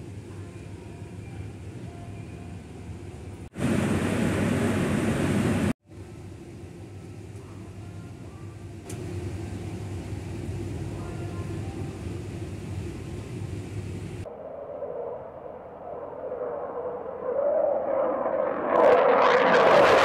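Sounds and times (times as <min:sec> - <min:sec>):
distant airport rumble: 0:00.0 - 0:20.0
fighter jet passing overhead: 0:14.3 - 0:20.0.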